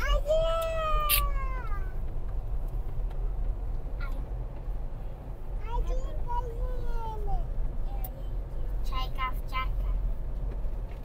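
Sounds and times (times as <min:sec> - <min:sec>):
moving car rumble: 0:00.0 - 0:11.0.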